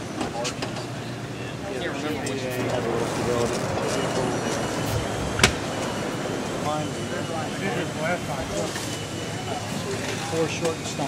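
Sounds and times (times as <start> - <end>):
steady low hum: 0.9 - 10.4.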